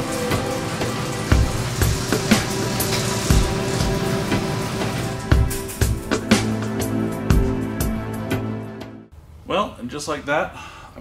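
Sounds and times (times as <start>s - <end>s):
background music with heavy beat: 0.0s - 9.0s.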